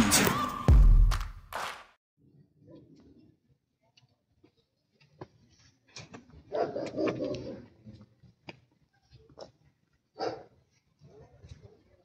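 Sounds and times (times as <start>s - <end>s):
dog barking: 6.5s - 7.7s, 10.2s - 11.9s.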